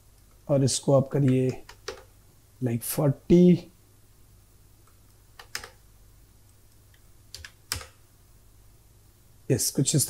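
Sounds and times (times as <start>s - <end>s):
keyboard keystrokes: 1.2s - 2.1s, 5.4s - 5.8s, 7.3s - 8.0s.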